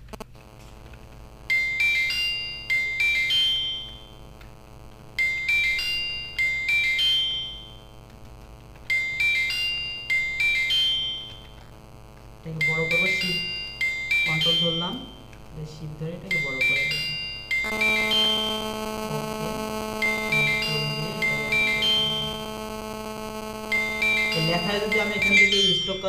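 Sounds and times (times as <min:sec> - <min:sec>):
phone ringtone melody: 0:01.5 - 0:04.2, 0:05.2 - 0:08.0, 0:08.9 - 0:11.6, 0:12.6 - 0:15.3, 0:16.2 - 0:26.0.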